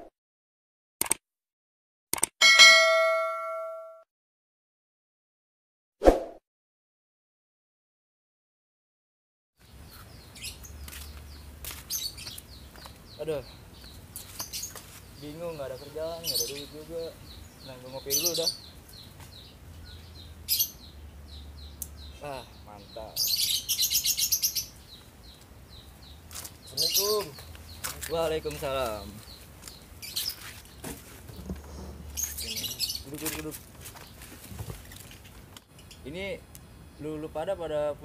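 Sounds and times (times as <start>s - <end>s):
short clicks: 1.0s - 1.2s, 2.1s - 2.4s
notification bell ding: 2.4s - 4.0s
small bird chirping: 9.6s - 34.3s, 34.9s - 36.3s.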